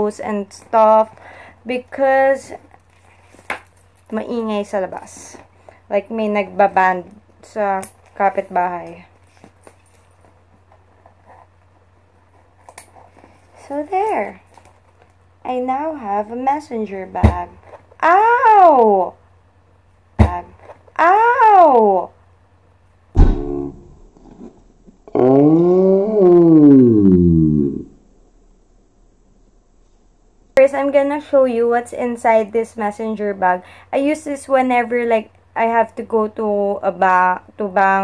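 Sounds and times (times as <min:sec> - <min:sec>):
steady low hum: 0:00.0 - 0:37.8
woman groaning: 0:25.1 - 0:27.9.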